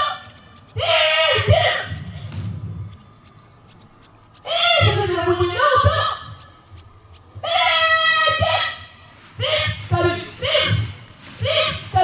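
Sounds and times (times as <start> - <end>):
soldiers shouting drill calls: 0.8 - 2.0, 4.4 - 6.4, 7.4 - 12.0.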